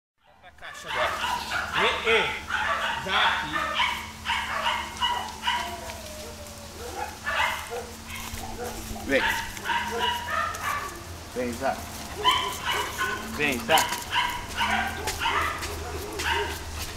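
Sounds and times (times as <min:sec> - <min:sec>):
dogs barking in short high calls: 0:00.2 - 0:11.2, 0:12.0 - 0:16.9.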